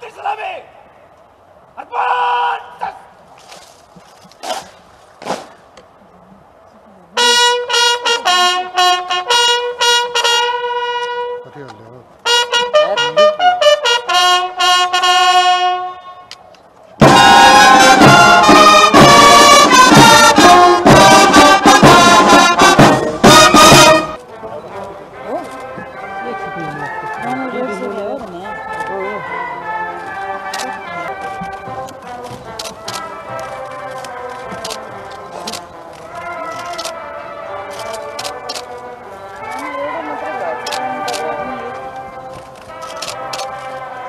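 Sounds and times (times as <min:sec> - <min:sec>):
bugle call: 0:07.2 - 0:11.6, 0:12.2 - 0:16.4, 0:17.0 - 0:44.0
military brass band playing: 0:07.2 - 0:16.3, 0:17.0 - 0:44.0.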